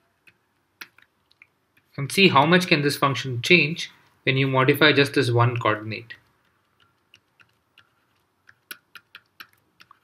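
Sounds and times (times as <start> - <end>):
pen stylus tapping on tablet: 5.5 - 10.0.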